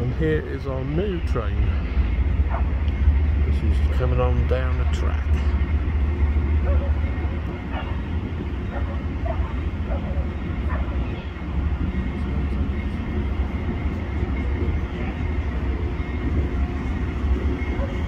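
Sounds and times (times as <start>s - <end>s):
diesel locomotive rumbling: 0.0s - 18.0s
faint voices: 6.5s - 18.0s.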